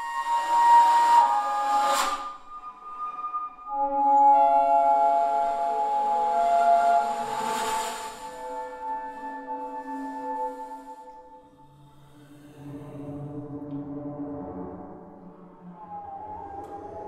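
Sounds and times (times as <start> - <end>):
breathy bass flute: 0.0 - 13.5, 15.4 - 17.0.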